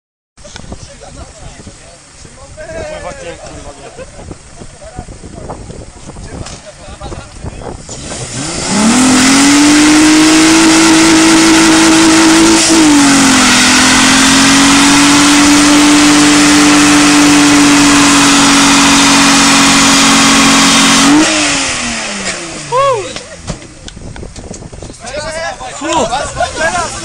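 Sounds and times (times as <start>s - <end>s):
car engine revving hard: 7.8s - 22.8s.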